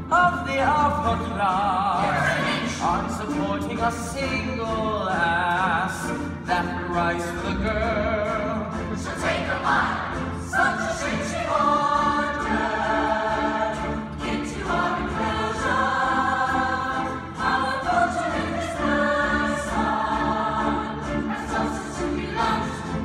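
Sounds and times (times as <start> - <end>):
musical accompaniment: 0.0 - 23.0
ensemble singing in chorus: 1.2 - 23.0.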